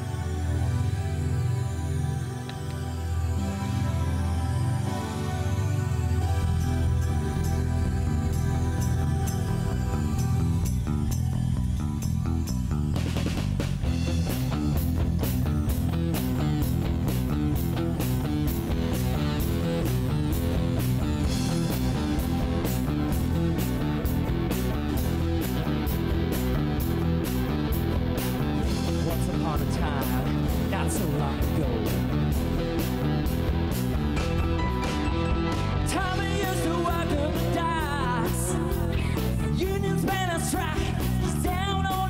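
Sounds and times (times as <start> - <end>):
live rock band playing: 2.4 - 42.0.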